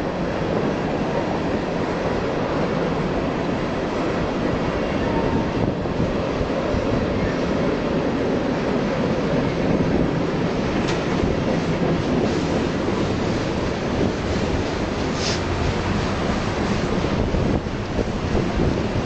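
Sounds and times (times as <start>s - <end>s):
freight train wheels on rails: 0.0s - 19.0s.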